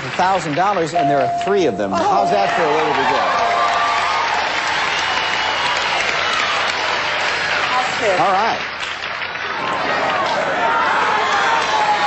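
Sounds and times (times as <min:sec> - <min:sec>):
studio audience applauding: 0:00.0 - 0:12.0.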